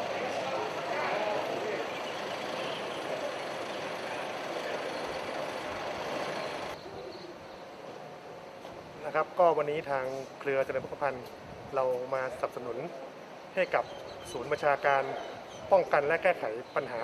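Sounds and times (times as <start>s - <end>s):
indistinct voices: 0.0s - 6.8s
steady noise haze: 0.0s - 17.0s.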